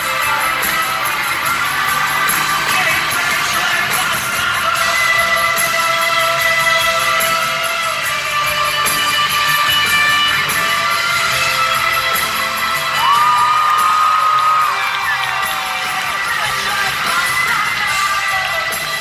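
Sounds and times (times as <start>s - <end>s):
crowd cheering and shouting: 0.0s - 19.0s
live rock band with electric guitar: 0.0s - 19.0s.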